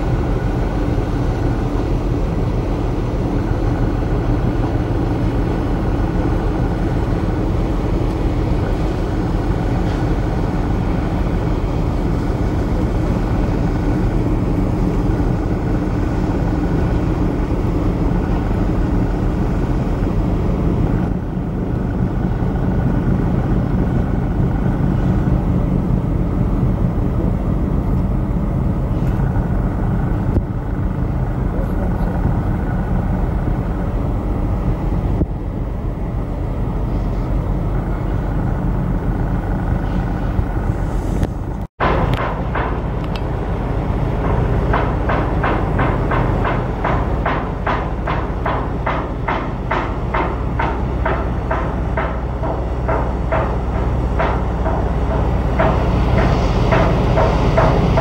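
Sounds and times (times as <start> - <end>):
low engine rumble: 0.0 - 58.0.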